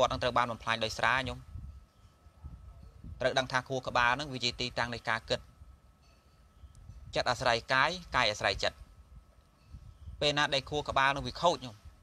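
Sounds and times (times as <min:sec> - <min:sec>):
monk preaching: 0:03.2 - 0:05.5.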